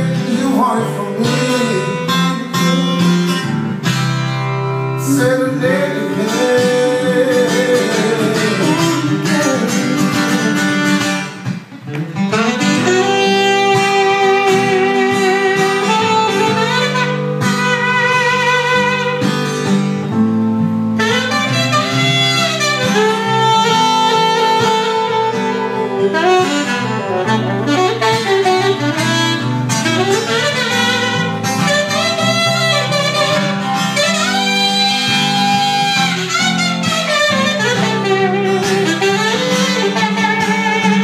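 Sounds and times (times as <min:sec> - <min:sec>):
saxophone solo: 0:00.0 - 0:11.5, 0:12.1 - 0:41.0
guitar accompaniment: 0:00.0 - 0:41.0.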